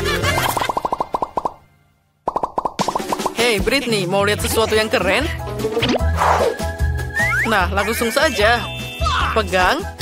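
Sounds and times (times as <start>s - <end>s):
cartoon pop sound effects: 0.5s - 1.6s, 2.2s - 3.4s
bright children's background music: 3.0s - 10.0s.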